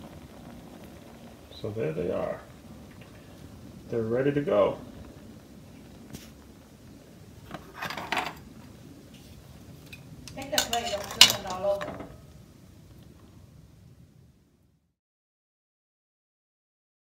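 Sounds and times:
tongs clattering against metal pot: 9.9s - 12.1s.

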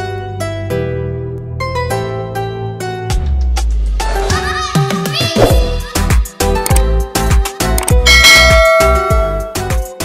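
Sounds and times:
music with kick-drum beat: 4.8s - 10.0s
bright bell chime: 8.1s - 9.8s.

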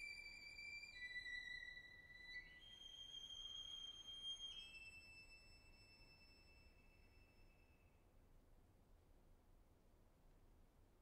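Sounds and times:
soft high violin note: 0.0s - 7.9s.

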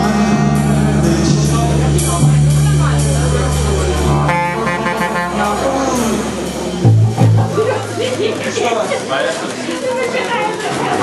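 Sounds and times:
saxophone holding reedy note: 0.0s - 7.4s
live noise-rock band: 0.0s - 8.4s.

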